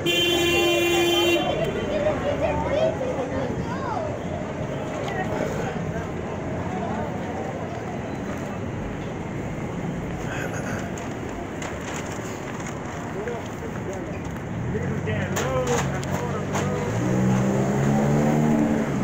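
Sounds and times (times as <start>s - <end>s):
faint voices of passersby: 0.0s - 19.0s
passing traffic: 0.0s - 19.0s.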